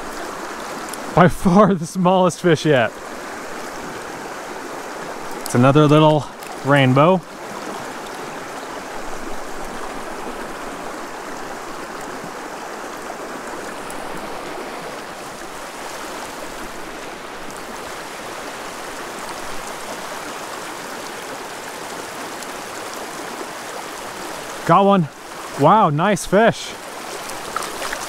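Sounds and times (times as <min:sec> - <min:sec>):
creek rushing over rocks: 0:00.0 - 0:28.0.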